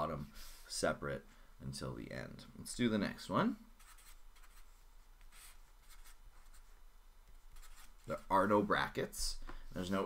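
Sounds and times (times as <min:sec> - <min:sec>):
marker scratching on paper: 0:03.8 - 0:06.7, 0:07.5 - 0:08.3.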